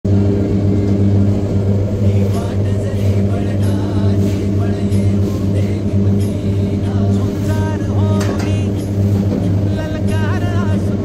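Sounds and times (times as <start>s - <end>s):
machine running with low hum: 0.0s - 11.0s.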